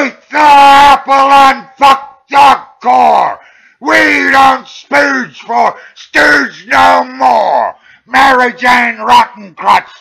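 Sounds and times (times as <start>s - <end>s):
man chanting drawn-out calls: 0.0s - 10.0s.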